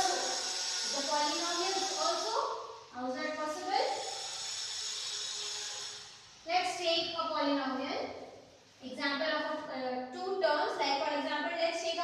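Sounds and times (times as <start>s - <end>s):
duster rubbing on chalkboard: 0.0s - 2.4s.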